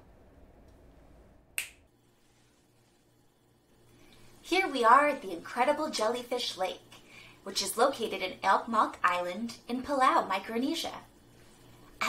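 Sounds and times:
finger snap: 0:01.6 - 0:01.9.

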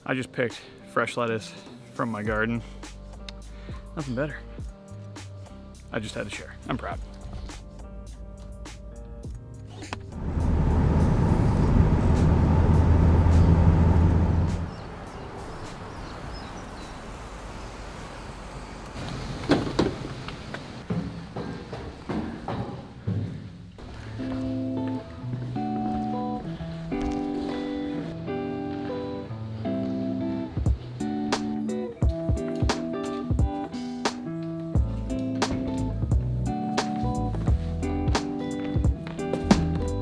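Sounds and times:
background guitar music: 0:00.0 - 0:15.7, 0:23.8 - 0:40.0
car engine and road noise: 0:07.7 - 0:20.9.

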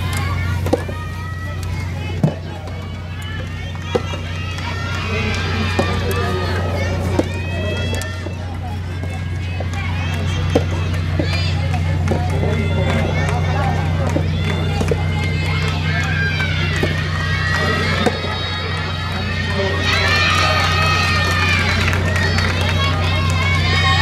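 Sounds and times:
high-pitched voices shouting: 0:00.0 - 0:24.0
steady low hum: 0:00.0 - 0:24.0.

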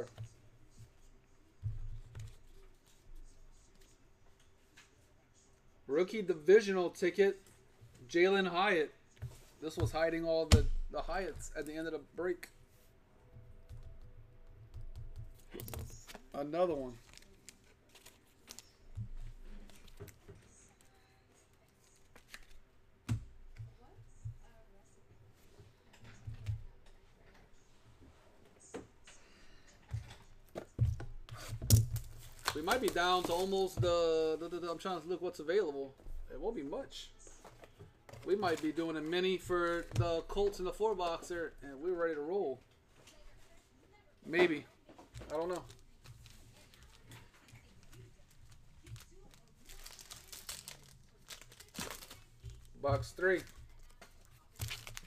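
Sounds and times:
foil wrapper crinkling: 0:45.2 - 0:55.0.

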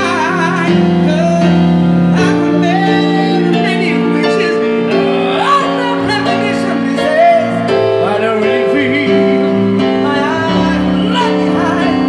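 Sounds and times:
keyboard accompaniment: 0:00.0 - 0:12.0
man singing into a microphone: 0:00.0 - 0:12.0.

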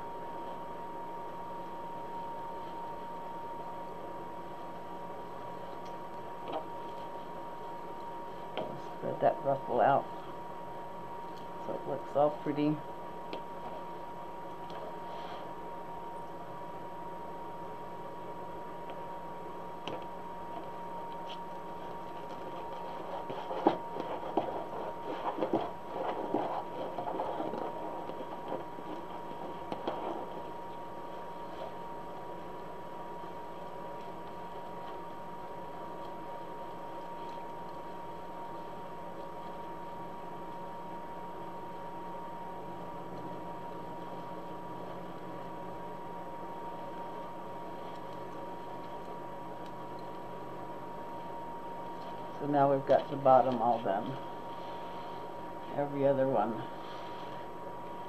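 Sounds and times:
background hum: 0:00.0 - 0:58.0
mesh rustling and crinkling: 0:20.5 - 0:32.6.

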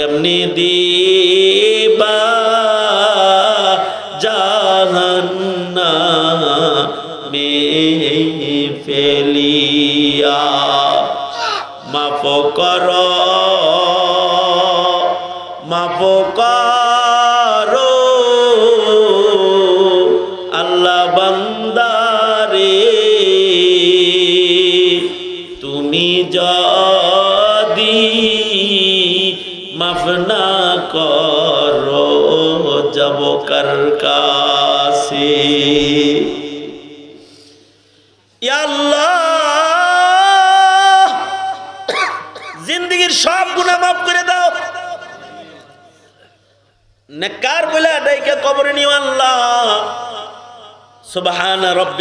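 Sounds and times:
man chanting into a microphone: 0:00.0 - 0:37.6, 0:38.4 - 0:46.1, 0:47.1 - 0:52.0.

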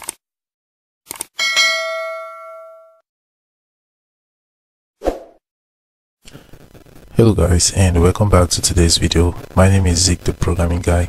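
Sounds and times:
notification bell ding: 0:01.4 - 0:03.0.

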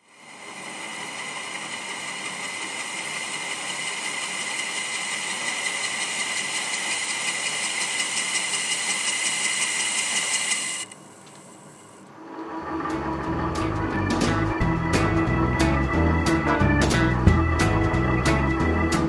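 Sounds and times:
metal lathe cutting: 0:00.0 - 0:11.0.

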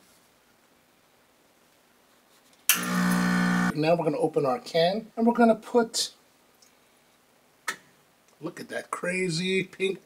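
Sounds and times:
espresso machine pump buzzing: 0:02.7 - 0:03.7.

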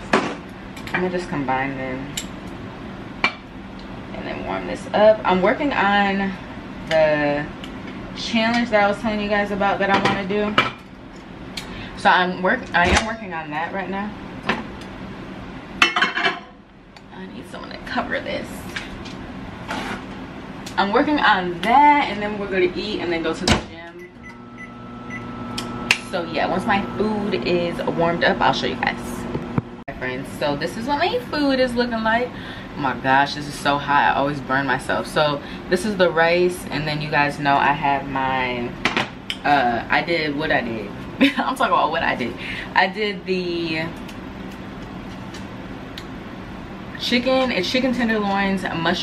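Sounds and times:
microwave oven humming: 0:00.0 - 0:49.0.

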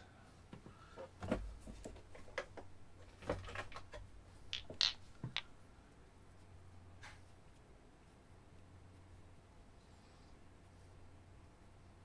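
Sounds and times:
metal balls clicking and knocking: 0:03.4 - 0:05.5.

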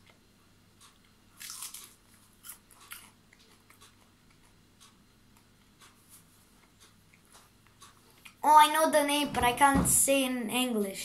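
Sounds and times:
child crunching lettuce: 0:01.3 - 0:04.4.

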